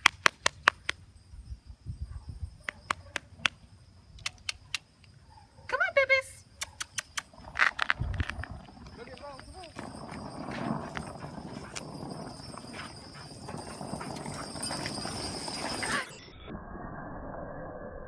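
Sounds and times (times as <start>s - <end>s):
dog paws pattering: 7.0s - 16.1s
longboard wheels rolling on asphalt: 7.2s - 16.2s.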